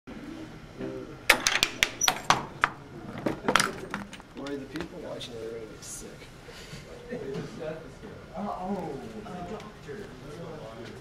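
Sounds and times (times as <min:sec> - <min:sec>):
sharp wooden knocks and clicks: 0:01.3 - 0:02.8.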